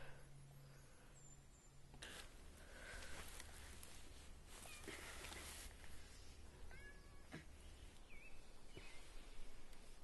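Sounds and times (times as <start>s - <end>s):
person breathing softly: 0.0s - 1.2s, 1.9s - 6.5s, 8.6s - 10.0s
faint bird chirps: 6.0s - 10.0s.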